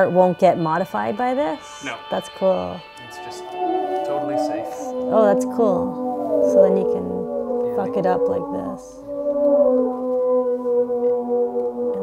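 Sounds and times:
droning chord: 0.0s - 12.0s
sliding higher note: 1.0s - 12.0s.

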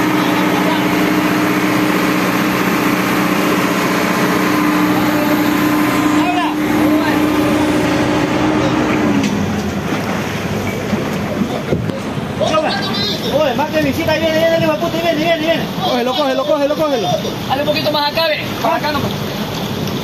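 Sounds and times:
diesel engine running: 0.0s - 12.4s
rushing water: 0.0s - 20.0s.

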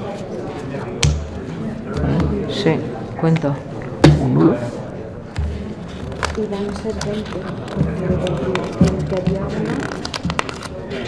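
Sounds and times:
low indistinct talk: 0.0s - 11.0s
paper rustling: 5.5s - 11.0s.

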